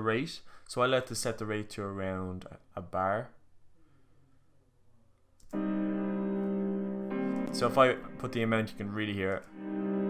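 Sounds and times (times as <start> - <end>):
synth pad chord panning: 5.5 - 10.0.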